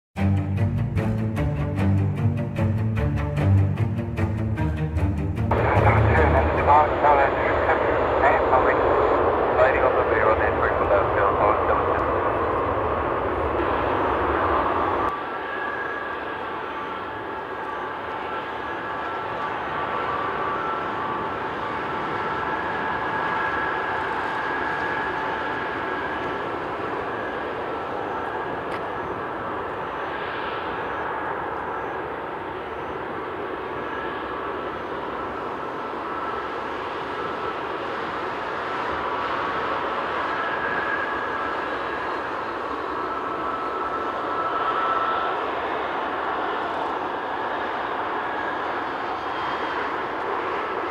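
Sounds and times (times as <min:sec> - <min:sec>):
jet engines whining at low power: 0:00.2 - 0:50.9
jet engines roaring overhead: 0:03.4 - 0:50.9.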